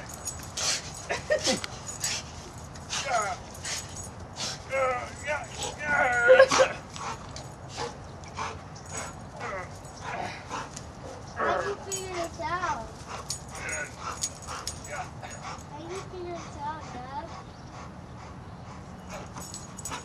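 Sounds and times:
dog whining and yipping: 4.7s - 6.8s.

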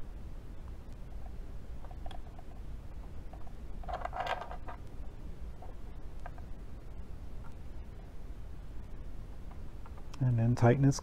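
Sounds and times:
small metal clicks and clatter: 3.3s - 4.9s.

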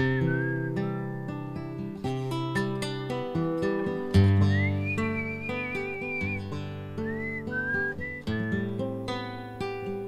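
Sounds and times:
whistled melody: 0.0s - 1.6s, 2.3s - 2.9s, 3.6s - 9.2s
acoustic guitar strumming: 0.0s - 10.0s.

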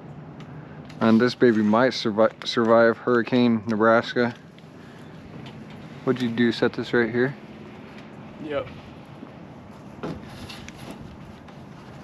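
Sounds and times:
handling noise on camera: 9.6s - 12.0s.

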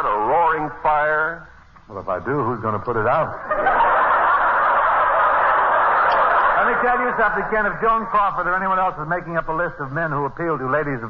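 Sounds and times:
audience laughing: 3.3s - 8.2s.

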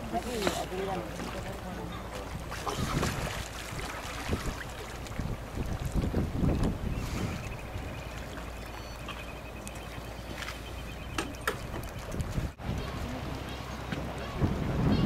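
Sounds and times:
sea water washing on rocks: 0.0s - 8.5s
wind buffeting microphone: 2.2s - 8.3s, 11.1s - 15.0s.

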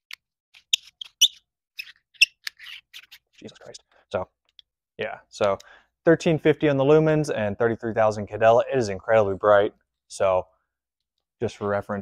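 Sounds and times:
flashlight cap squeaks and clicks: 0.1s - 3.7s.

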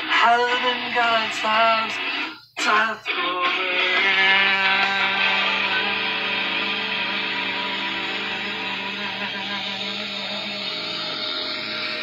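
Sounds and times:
sustained electric guitar chord: 3.6s - 12.0s.

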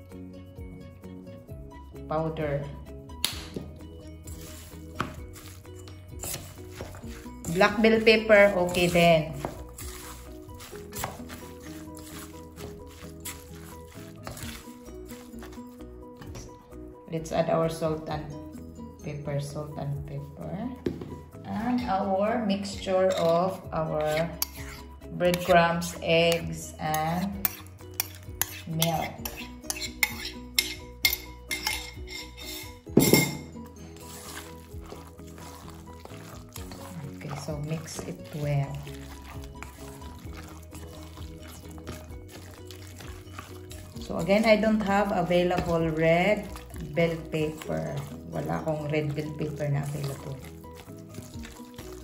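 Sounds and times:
light melody over steady beat: 0.0s - 52.0s
utensil scraping against bowl: 4.1s - 15.9s, 22.9s - 52.0s.

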